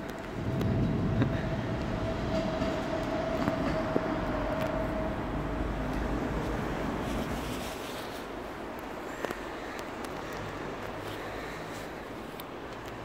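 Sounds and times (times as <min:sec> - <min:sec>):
train running gear rumbling: 0:00.0 - 0:13.0.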